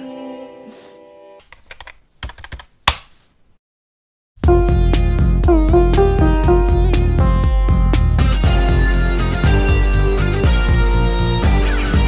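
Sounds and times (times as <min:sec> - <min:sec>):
keyboard typing clicks: 0:01.4 - 0:03.0.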